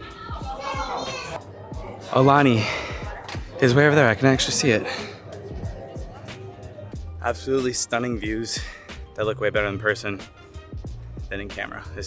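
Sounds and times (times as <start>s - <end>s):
children chattering and calling out: 0.0s - 7.0s
background music with steady beat: 0.0s - 12.0s.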